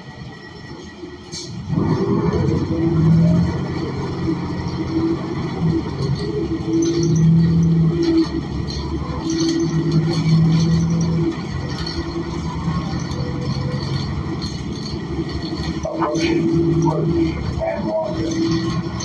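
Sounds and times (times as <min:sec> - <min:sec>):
bus engine drone: 0:00.0 - 0:19.0.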